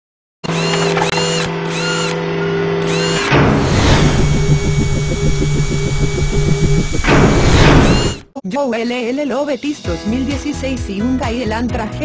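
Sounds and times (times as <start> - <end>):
machine-like whir: 0.4 - 8.3
whoosh: 3.4 - 8.2
fast pulsing beat: 4.1 - 8.2.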